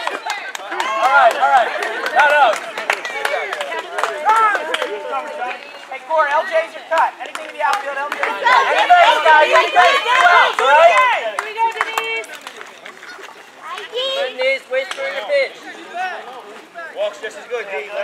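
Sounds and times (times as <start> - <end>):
people talking and calling out: 0.0 - 18.0.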